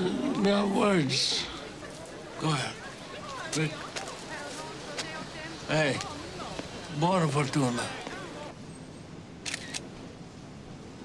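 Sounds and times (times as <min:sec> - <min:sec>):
faint street background: 0:00.0 - 0:11.0.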